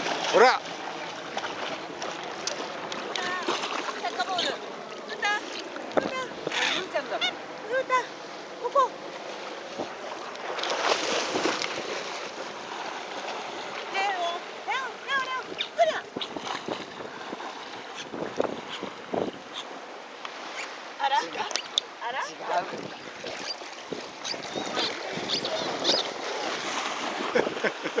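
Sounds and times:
water splashing around wading legs: 0:00.0 - 0:06.8, 0:08.7 - 0:28.0
small waves washing: 0:00.0 - 0:28.0
dog splashing through water: 0:10.5 - 0:12.0.

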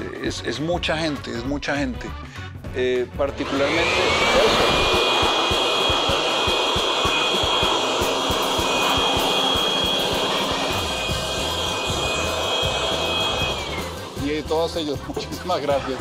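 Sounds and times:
leaf blower running: 0:03.3 - 0:14.6.

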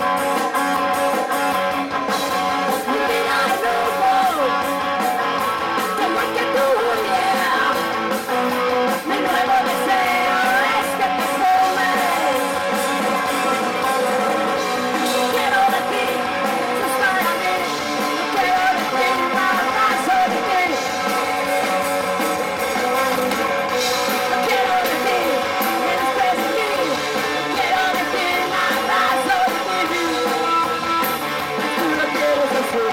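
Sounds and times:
drum kit: 0:00.0 - 0:32.9
electric bass: 0:00.0 - 0:32.9
electric guitar: 0:00.0 - 0:32.9
live rock band playing: 0:00.0 - 0:32.9
woman singing: 0:02.7 - 0:04.6, 0:05.9 - 0:08.0, 0:08.9 - 0:14.1, 0:14.9 - 0:21.0, 0:24.2 - 0:31.0, 0:31.6 - 0:32.9.

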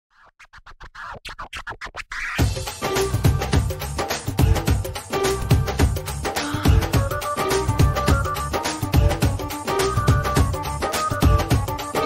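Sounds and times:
turntable scratching: 0:00.1 - 0:02.6.

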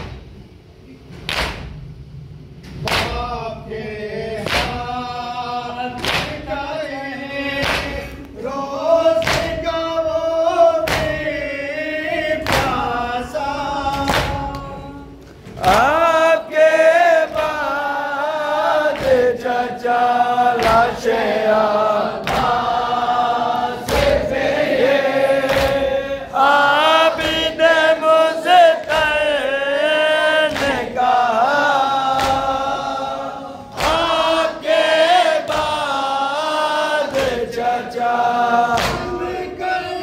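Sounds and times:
men chanting a lament: 0:02.8 - 0:40.0.

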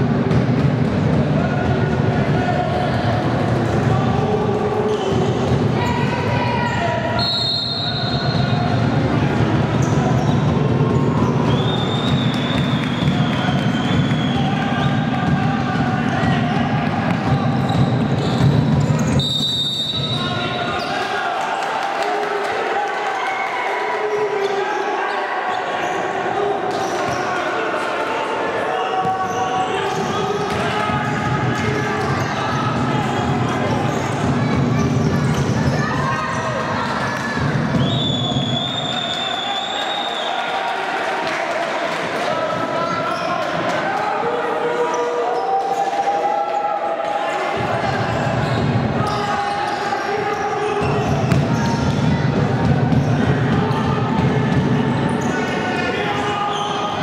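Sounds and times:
voices echoing in a hall: 0:00.0 - 0:57.0.

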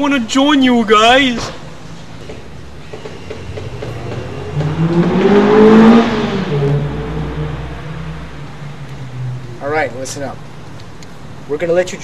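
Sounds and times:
road noise: 0:00.0 - 0:12.0
car driving past: 0:02.8 - 0:09.8.

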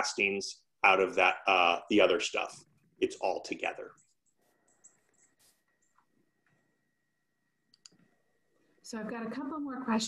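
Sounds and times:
faint clicks: 0:07.7 - 0:08.0.

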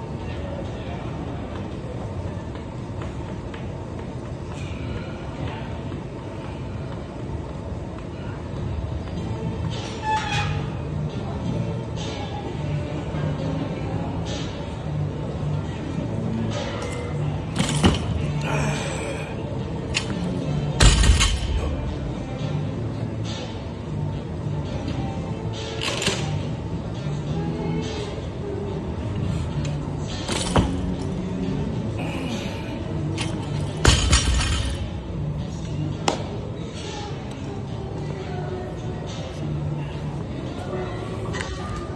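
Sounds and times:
gym room sound: 0:00.0 - 0:41.9
background music: 0:08.8 - 0:41.9.

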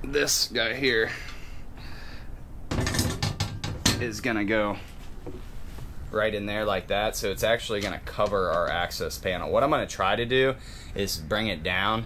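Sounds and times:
metal bars clattering and clicking: 0:02.7 - 0:04.1.

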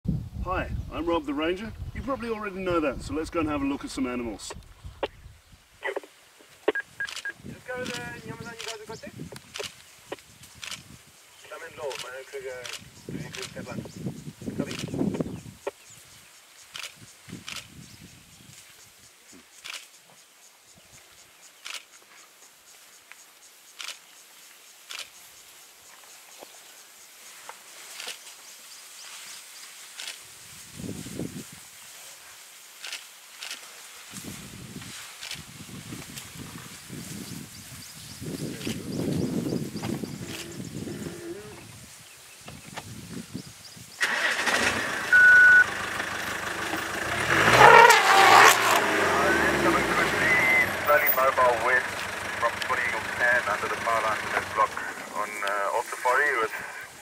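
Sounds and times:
vehicle engine running: 0:44.1 - 0:55.5.

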